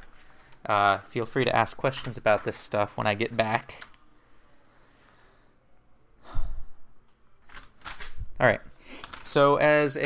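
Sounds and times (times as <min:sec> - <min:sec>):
person sighing: 0:06.2 - 0:06.9.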